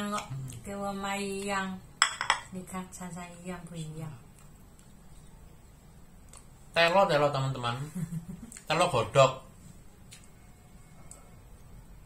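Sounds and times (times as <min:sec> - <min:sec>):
woman's voice: 0:00.0 - 0:01.9, 0:02.5 - 0:04.2.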